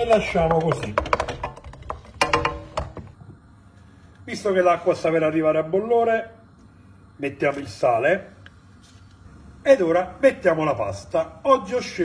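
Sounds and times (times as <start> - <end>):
wooden spoon knocking metal pan: 0.0 - 3.2.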